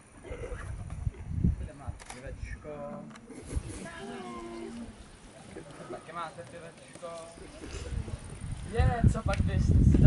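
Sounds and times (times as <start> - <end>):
wind rumble on microphone: 0.2 - 2.7, 7.5 - 10.0.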